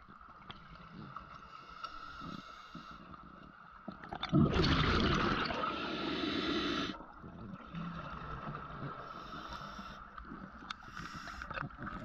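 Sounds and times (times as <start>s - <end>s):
underwater hum and rumble: 0.0s - 12.0s.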